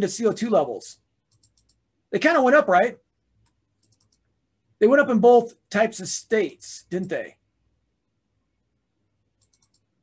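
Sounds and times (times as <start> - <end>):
faint computer mouse clicks: 1.3 - 1.8, 3.4 - 4.3, 9.4 - 9.9.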